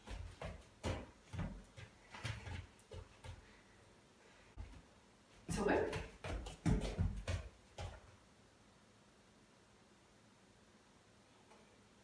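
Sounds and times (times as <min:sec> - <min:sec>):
dog paws thumping on balance board: 0:00.0 - 0:03.5, 0:05.4 - 0:08.1.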